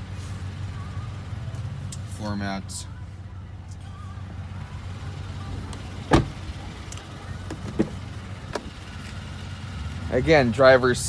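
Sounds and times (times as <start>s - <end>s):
truck engine idling: 0.0s - 11.0s
truck door clicks: 5.7s - 8.8s
truck door knock: 6.1s - 6.4s.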